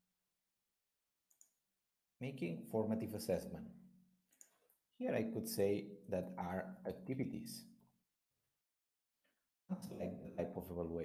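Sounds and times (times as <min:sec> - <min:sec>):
faint computer mouse click: 0:04.3 - 0:04.8.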